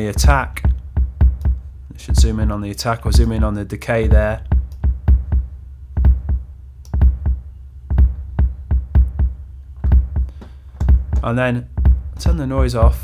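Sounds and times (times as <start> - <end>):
deep electronic kick drum: 0.0 - 13.0
clicky electronic percussion: 0.1 - 2.4, 4.1 - 13.0.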